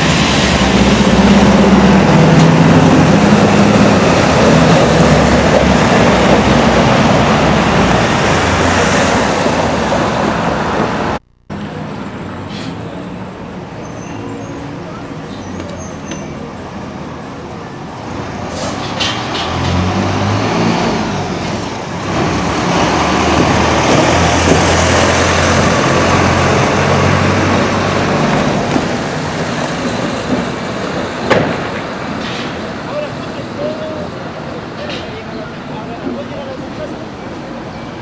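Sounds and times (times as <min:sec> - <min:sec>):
vehicle passing on street: 0:00.0 - 0:13.9, 0:17.9 - 0:38.0.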